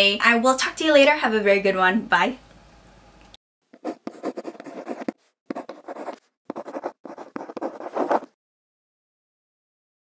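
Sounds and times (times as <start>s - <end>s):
pen scratching on paper: 3.7s - 8.4s.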